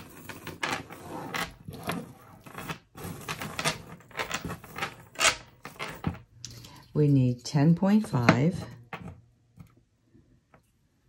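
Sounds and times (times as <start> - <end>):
metal chain clinking: 0.0 - 7.0.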